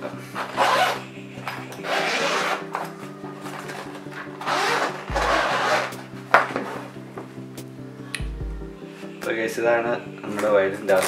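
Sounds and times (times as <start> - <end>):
background music: 0.0 - 11.0
zipper rasping open: 0.3 - 1.1, 1.8 - 2.9, 4.4 - 6.0.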